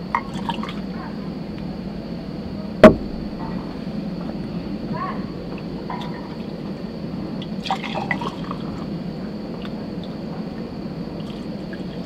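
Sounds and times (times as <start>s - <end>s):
low rumble: 0.7s - 7.6s.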